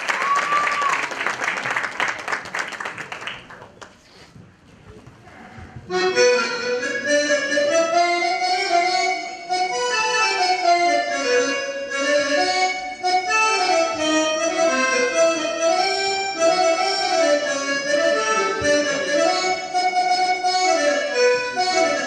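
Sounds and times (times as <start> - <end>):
keyboard playing slow reedy melody: 5.9 - 22.0.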